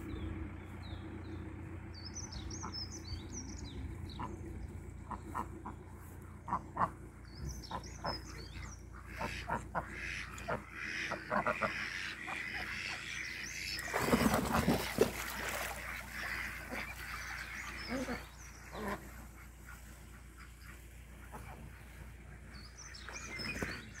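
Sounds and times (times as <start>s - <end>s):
ducks quacking: 2.3s - 24.0s.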